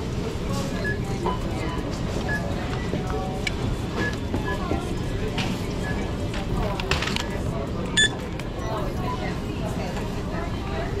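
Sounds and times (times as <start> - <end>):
murmur of voices: 0.0 - 11.0
checkout scanner beeps: 0.2 - 9.5.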